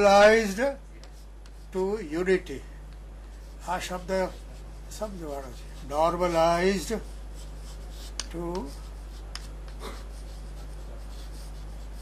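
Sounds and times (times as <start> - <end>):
steady low hum: 0.0 - 12.0
chalk scratching on chalkboard: 0.2 - 2.0, 3.2 - 12.0.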